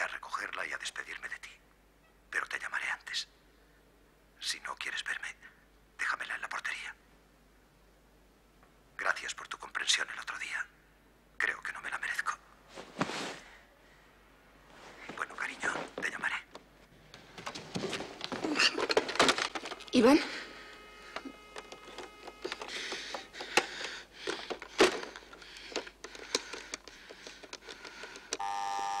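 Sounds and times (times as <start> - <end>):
electronic telephone tone: 20.3 - 23.1, 28.4 - 29.0
telephone dialing clicks: 20.7 - 28.4.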